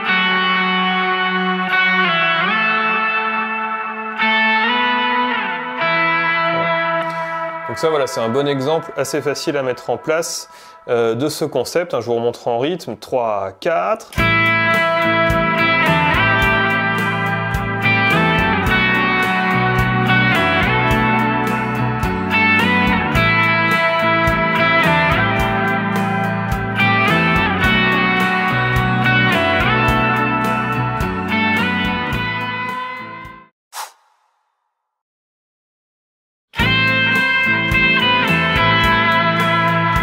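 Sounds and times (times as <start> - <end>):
bass guitar: 0.0 - 8.3, 14.1 - 33.5, 36.6 - 40.0
backing guitar arpeggios: 0.0 - 11.2, 14.2 - 33.4, 36.6 - 40.0
electric guitar lead with slides: 0.0 - 11.3, 14.2 - 33.4, 36.6 - 40.0.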